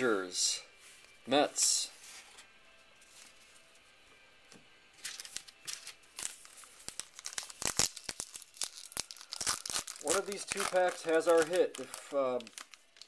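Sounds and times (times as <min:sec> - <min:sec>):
paper wrapper tearing: 0:05.0 - 0:13.0.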